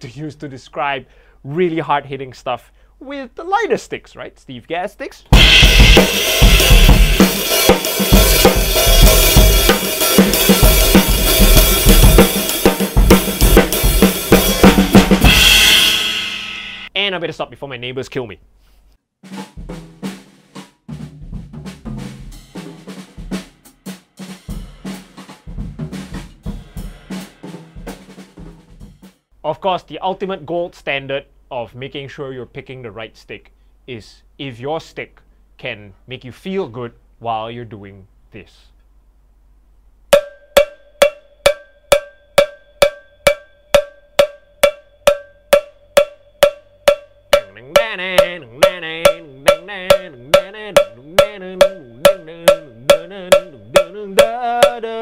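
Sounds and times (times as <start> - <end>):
drum kit playing: 5.3 - 17.0, 19.2 - 29.3, 40.1 - 55.0.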